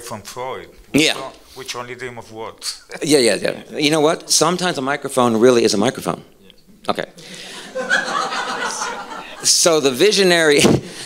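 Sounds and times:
audience laughing: 7.3 - 9.7.

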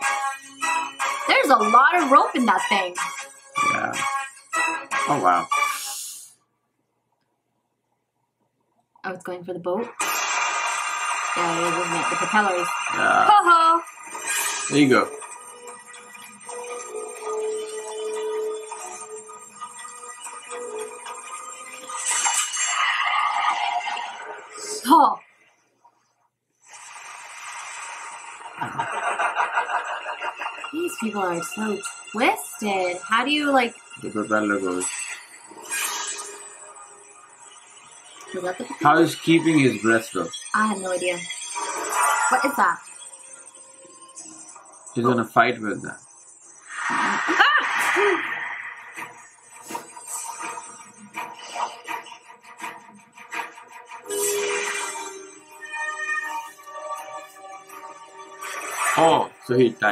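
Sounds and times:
quiet background music: 0.0 - 7.0, 8.1 - 59.9
film soundtrack hiss: 0.0 - 59.9.

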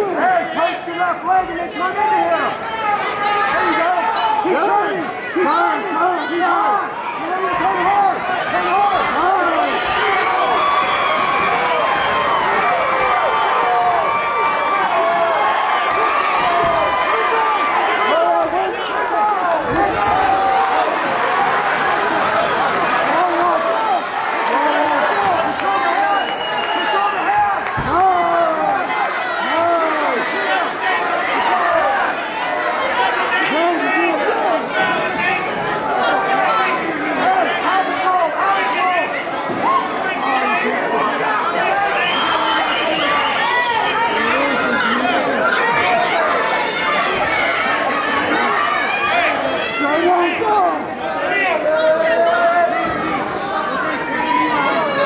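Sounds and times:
crowd talking and shouting: 0.0 - 55.0.

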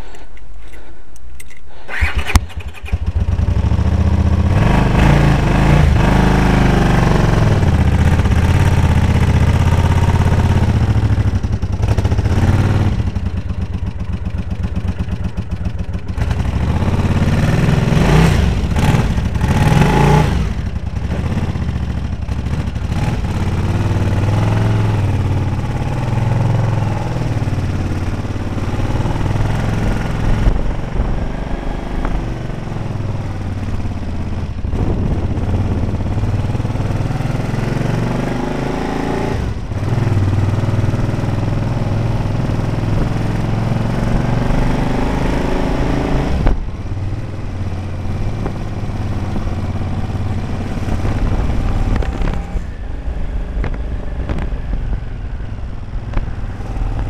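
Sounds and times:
motorcycle engine starting and revving: 1.5 - 57.0.

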